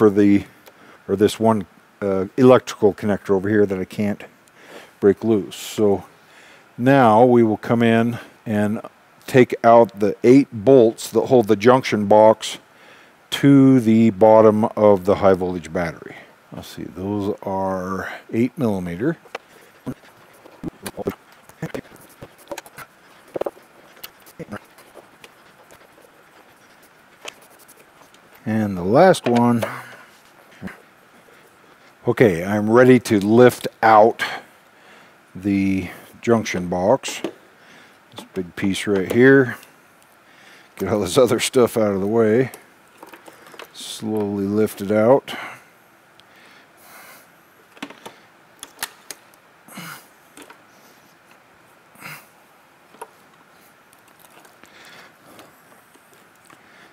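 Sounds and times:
soft rustle: 15.0 - 33.7, 50.2 - 56.9
clicks and knocks of parts: 42.9 - 43.8, 47.7 - 49.4, 50.3 - 50.6, 52.9 - 56.6.

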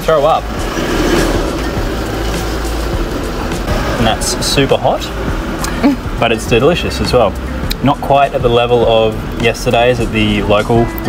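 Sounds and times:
street traffic rumble: 0.0 - 10.8
background music: 0.0 - 11.0.

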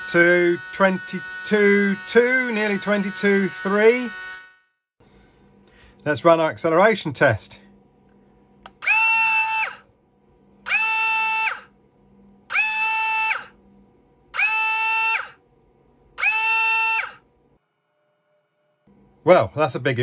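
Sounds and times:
small electric motor whine: 0.0 - 4.9, 8.8 - 9.8, 10.6 - 11.7, 12.5 - 13.6, 14.4 - 15.4, 16.2 - 17.2.

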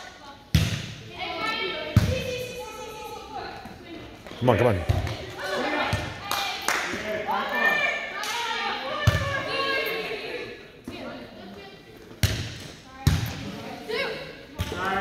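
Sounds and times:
players' voices: 0.0 - 15.0.

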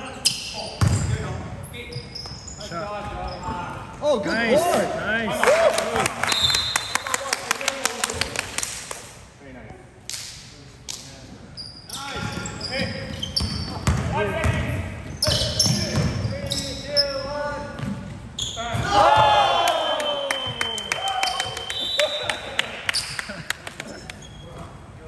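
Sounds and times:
sneaker squeaks: 0.0 - 3.9, 11.4 - 19.4, 20.4 - 22.3, 23.9 - 24.9.

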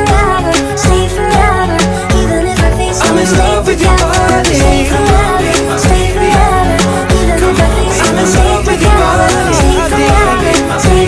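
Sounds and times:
pop song mashup: 0.0 - 11.0.

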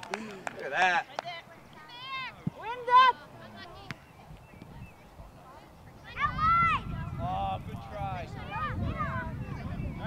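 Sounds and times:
faint distant voices: 0.0 - 10.0.

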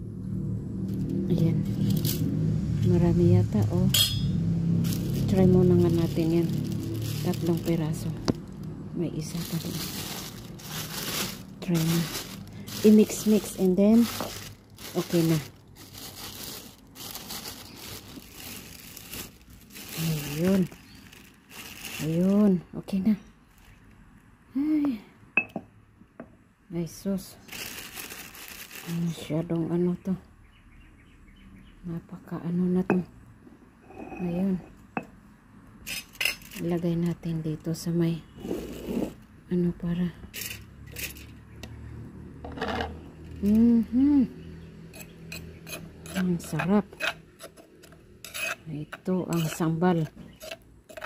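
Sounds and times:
plastic bag crinkling: 4.7 - 22.4, 27.4 - 29.3.

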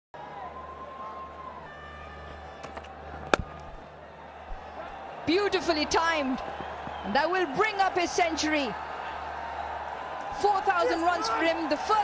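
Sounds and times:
stadium crowd murmur: 0.2 - 12.0
cricket bat striking ball: 2.6 - 3.6.

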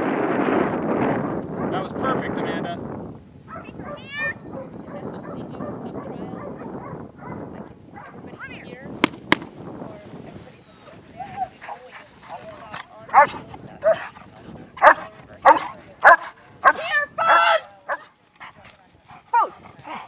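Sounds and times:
dog yelping barks: 3.5 - 5.4
murmur of voices: 3.6 - 20.0.

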